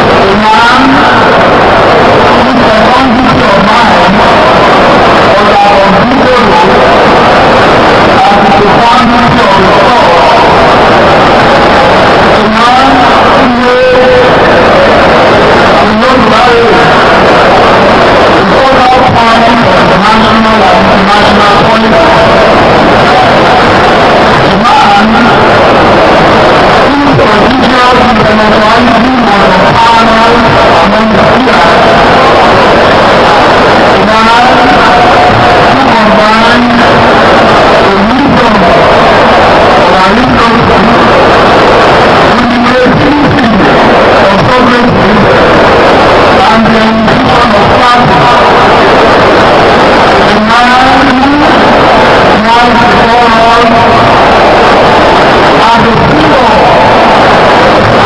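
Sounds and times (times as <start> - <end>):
harsh distortion noise: 0.0 - 58.0
loud rushing noise: 0.0 - 58.0
man speaking over public address: 0.0 - 58.0.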